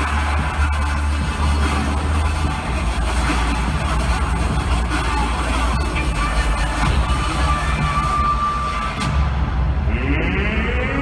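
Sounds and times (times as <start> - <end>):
crowd cheering: 0.0 - 11.0
heavy bass: 0.0 - 11.0
hype music over sound system: 0.0 - 11.0.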